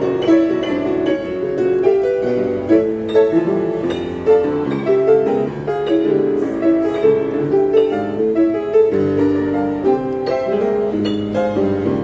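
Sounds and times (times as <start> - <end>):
upright piano classical piece: 0.0 - 12.0.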